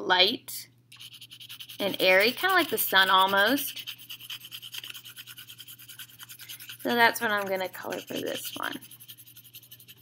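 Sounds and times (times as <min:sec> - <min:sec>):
pencil scratching on paper: 0:01.0 - 0:10.0.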